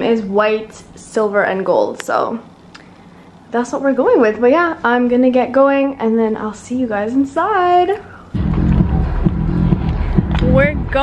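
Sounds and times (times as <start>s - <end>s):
music with strong bass beat: 8.3s - 11.0s.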